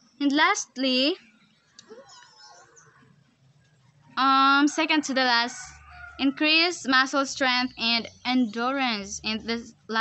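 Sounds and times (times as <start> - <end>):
faint distant bird calls: 0.0 - 10.0.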